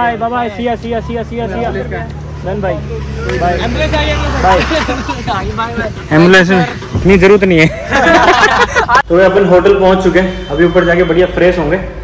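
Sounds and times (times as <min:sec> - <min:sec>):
low vehicle hum: 0:00.0 - 0:12.0
voices talking: 0:00.0 - 0:12.0.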